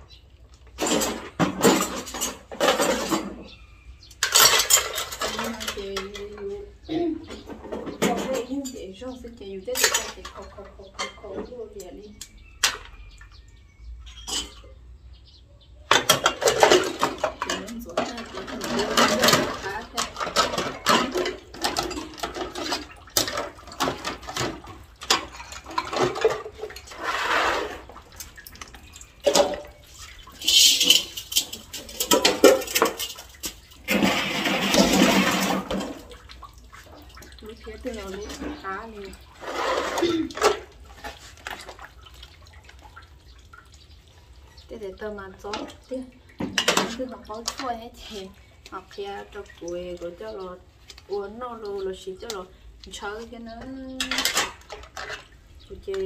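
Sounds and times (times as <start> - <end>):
ceramic dishes clattering: 0.8 - 6.5, 9.7 - 11.5, 14.1 - 14.8, 15.9 - 27.9, 28.8 - 36.2, 39.4 - 41.7, 46.4 - 47.7, 54.0 - 55.4
person's voice: 5.3 - 7.2, 17.4 - 20.4, 37.4 - 39.2, 46.8 - 54.3, 55.7 - 56.0
water splashing and pouring: 16.0 - 51.7.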